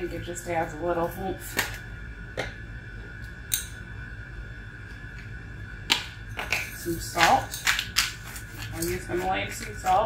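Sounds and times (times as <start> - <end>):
faint steady whine: 0.0 - 10.0.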